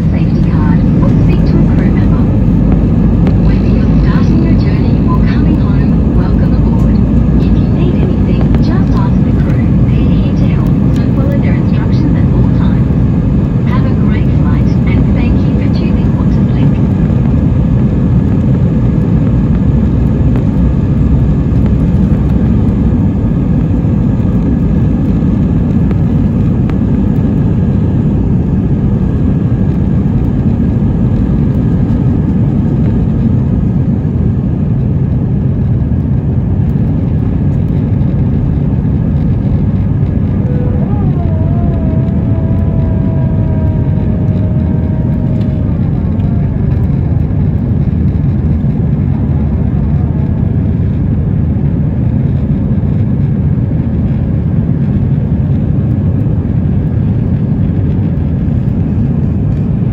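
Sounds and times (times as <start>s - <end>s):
jet engines rumbling in cabin: 0.0s - 59.9s.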